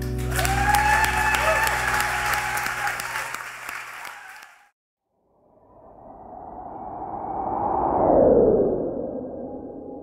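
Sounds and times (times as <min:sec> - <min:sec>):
synthesized swell with falling sweep: 0:05.2 - 0:10.0.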